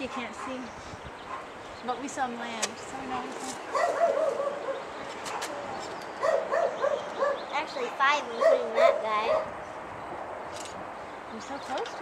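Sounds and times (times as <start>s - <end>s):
dog barking in high yips: 3.7s - 5.6s, 6.2s - 7.4s, 8.4s - 9.5s.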